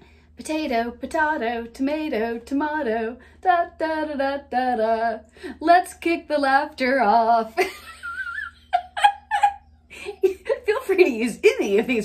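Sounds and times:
woman laughing: 0:07.5 - 0:10.6.

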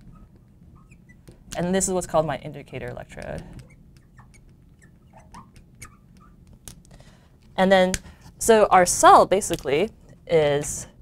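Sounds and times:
marker squeaking on glass: 0:00.0 - 0:01.4, 0:03.4 - 0:06.5.

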